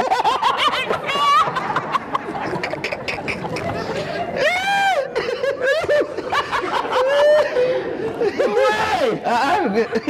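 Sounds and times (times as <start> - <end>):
person laughing in high peals: 0.0 - 8.6.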